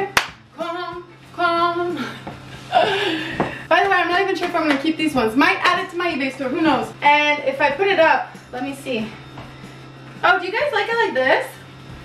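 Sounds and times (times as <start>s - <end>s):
hand clap: 0.1s - 0.4s, 4.4s - 4.9s.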